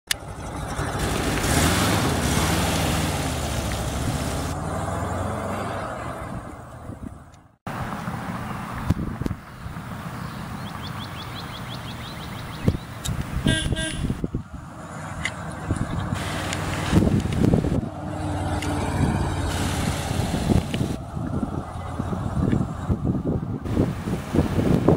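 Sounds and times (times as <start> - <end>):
bus engine driving off: 0.1 - 9.3, 14.6 - 24.2
road noise: 0.1 - 24.9.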